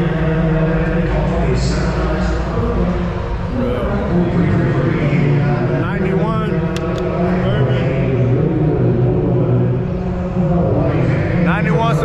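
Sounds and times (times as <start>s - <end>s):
man speaking: 0.0s - 9.4s, 10.9s - 12.0s
low drone of running vehicles: 0.0s - 12.0s
voices: 0.0s - 12.0s.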